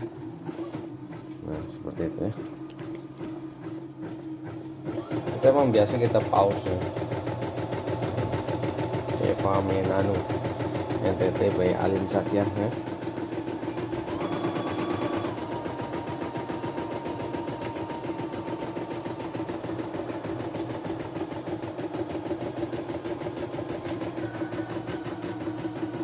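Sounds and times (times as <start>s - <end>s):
embroidery machine needle chatter: 2.4s - 26.0s.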